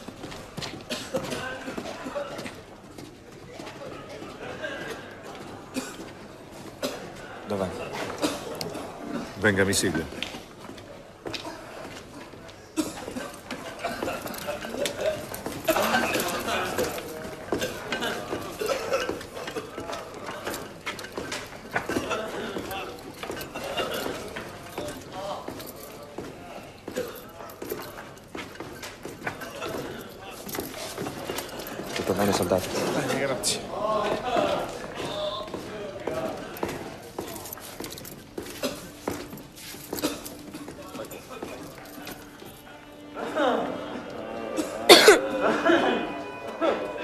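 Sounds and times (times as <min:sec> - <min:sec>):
indistinct background voices: 0:00.0 - 0:47.0
small clinks and knocks: 0:36.1 - 0:42.6.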